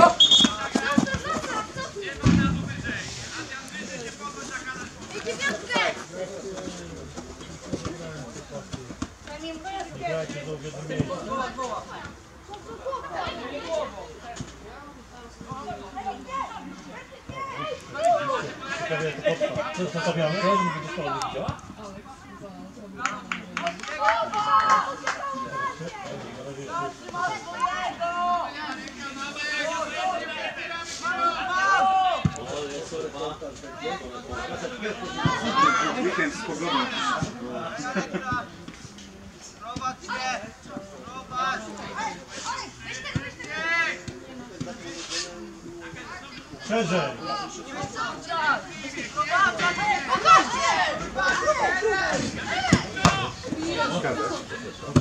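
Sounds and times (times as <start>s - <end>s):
young footballers shouting: 0.0s - 2.4s, 4.5s - 6.3s, 9.3s - 21.6s, 23.9s - 32.5s, 33.7s - 38.5s, 46.0s - 55.0s
players calling out: 0.0s - 2.5s, 45.9s - 55.0s
low thud: 2.2s - 3.0s.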